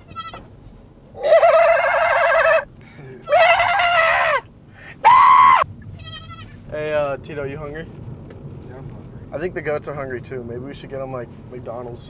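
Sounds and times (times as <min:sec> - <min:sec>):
goat kid bleating: 0:00.0 - 0:00.5, 0:03.2 - 0:04.4, 0:06.0 - 0:06.6.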